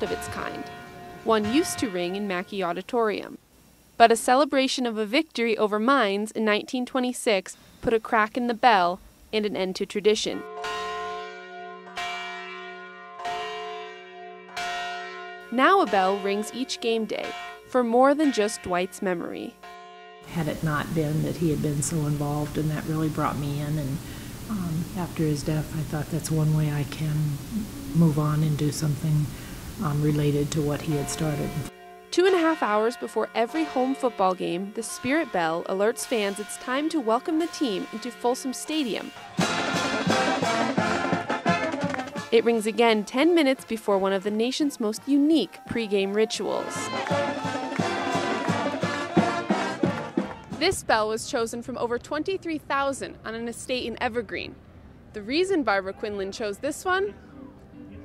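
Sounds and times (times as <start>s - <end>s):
brass band music: 0.0s - 2.8s, 29.8s - 50.6s
large bell ringing: 0.0s - 2.9s, 10.4s - 23.7s, 28.2s - 41.4s.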